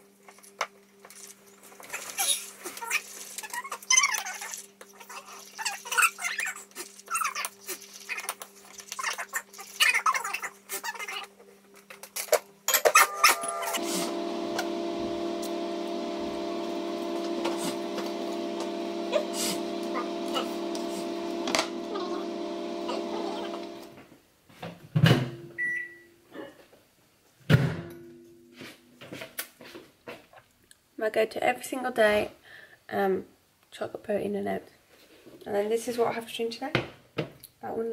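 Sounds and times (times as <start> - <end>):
low electrical hum: 10.6 - 24.3
short high beep: 13.0 - 14.1.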